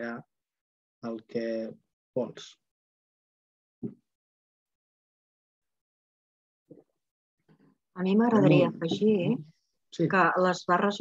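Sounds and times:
person speaking: 8.2s - 9.4s.

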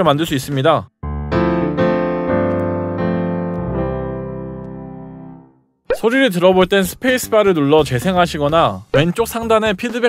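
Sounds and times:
piano chords: 1.0s - 5.7s.

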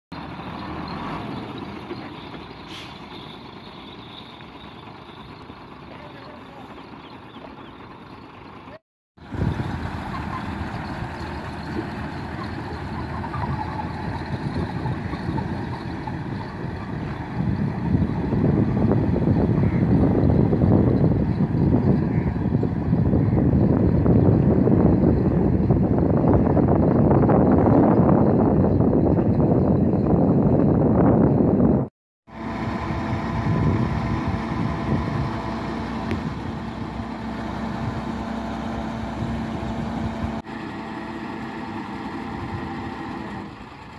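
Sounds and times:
diesel truck engine running: 0.1s - 43.9s.

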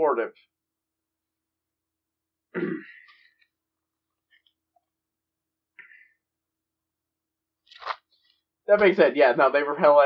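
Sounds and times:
man clearing his throat: 2.5s - 3.2s.

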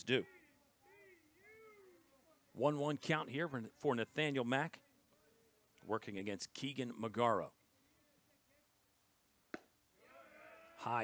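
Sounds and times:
baseball smacking into mitt: 9.5s - 9.7s.

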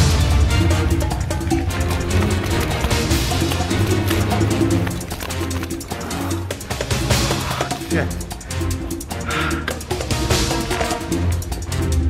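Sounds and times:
music with steady beat and bass: 0.0s - 12.0s.

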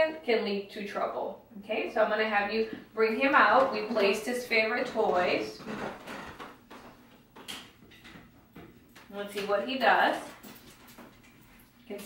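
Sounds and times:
footsteps on wooden floor: 2.7s - 7.5s.

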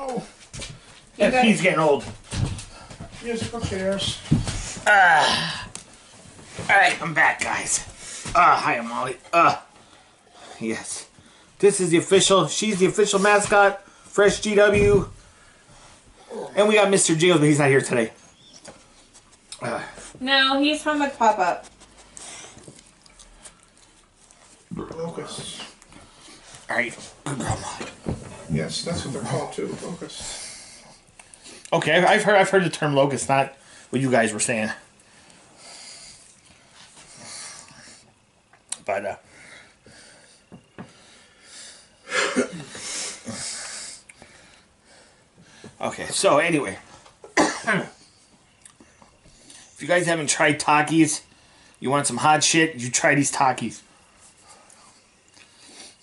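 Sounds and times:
dog sniffing and snuffling: 21.5s - 24.7s
man coughing: 42.0s - 42.8s, 47.2s - 48.0s.

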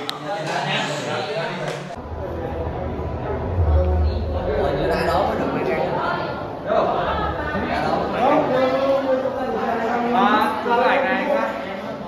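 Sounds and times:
indistinct voices: 0.0s - 9.6s
low rumble: 2.0s - 8.0s.

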